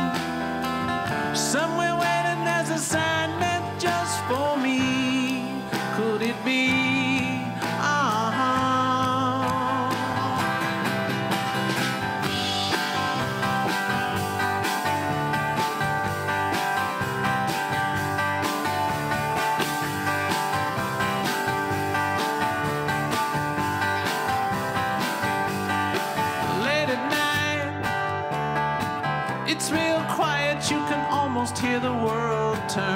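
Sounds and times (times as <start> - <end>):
drum kit steady beat: 0.0 - 32.9
electric bass: 0.0 - 32.9
steel-string acoustic guitar: 0.0 - 32.9.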